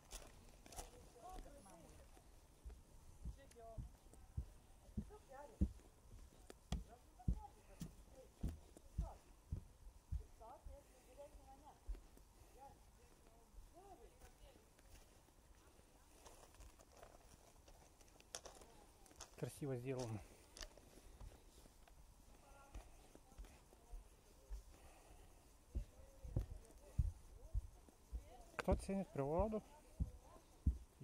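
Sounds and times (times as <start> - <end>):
bare footsteps on wooden boardwalk: 0.0 - 16.4, 20.0 - 31.0.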